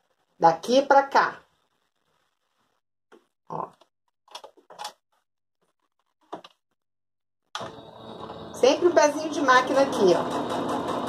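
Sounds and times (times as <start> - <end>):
electric sewing machine stitching: 7.6 - 11.0.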